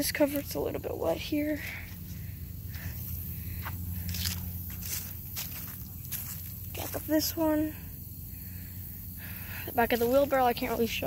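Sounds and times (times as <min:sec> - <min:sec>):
low steady rumble: 0:00.0 - 0:11.0
footsteps squelching through wet grass: 0:01.6 - 0:07.3.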